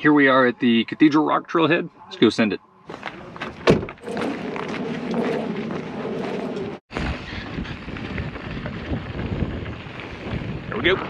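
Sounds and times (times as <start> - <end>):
steady rumbling: 3.0 - 11.0
wind buffeting microphone: 3.6 - 11.0.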